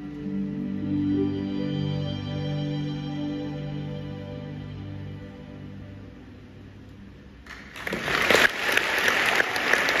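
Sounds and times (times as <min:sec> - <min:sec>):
audience applause: 0:07.5 - 0:10.0.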